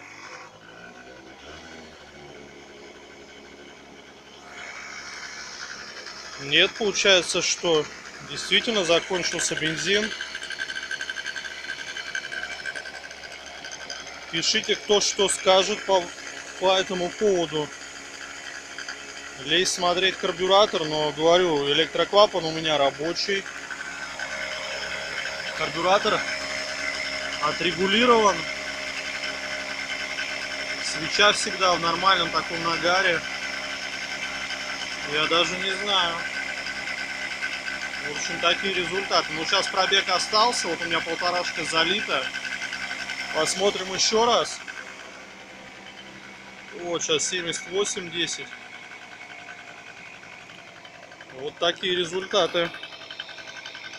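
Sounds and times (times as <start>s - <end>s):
scooter engine idling: 0.0s - 53.9s.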